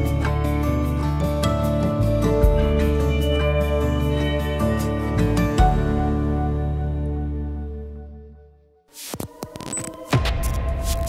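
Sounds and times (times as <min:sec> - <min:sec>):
sharp glitchy clicks: 0:08.9 - 0:11.0.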